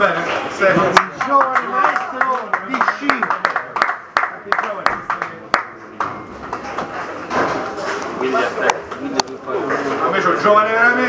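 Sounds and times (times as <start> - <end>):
people clapping: 0.0 - 7.1.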